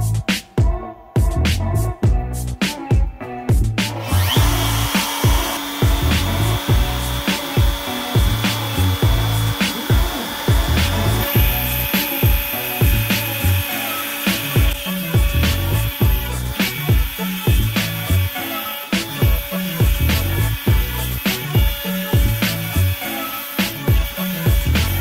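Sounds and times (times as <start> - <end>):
hip-hop beat music: 0.0 - 25.0
router spindle cutting acrylic: 3.9 - 25.0.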